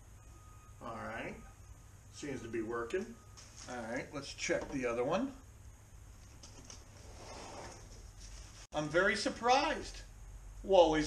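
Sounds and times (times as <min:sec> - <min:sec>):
low steady background hum: 0:00.0 - 0:11.0
soft rustles: 0:06.2 - 0:08.7.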